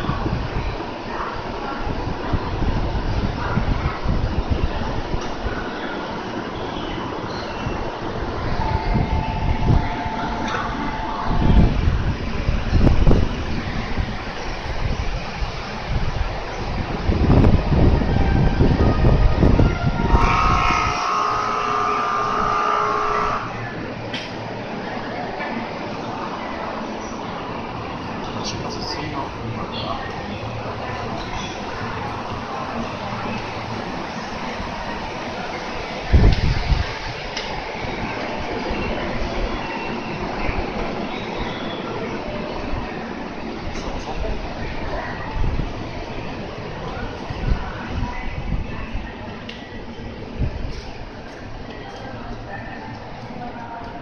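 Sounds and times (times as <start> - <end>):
electric train noise: 0.0 - 54.0.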